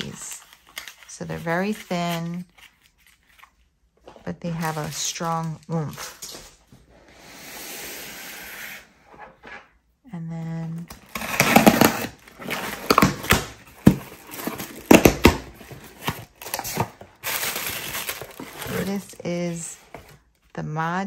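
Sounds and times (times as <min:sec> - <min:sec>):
cardboard box tearing: 0:10.9 - 0:19.2
plastic bag crinkling: 0:11.0 - 0:19.9.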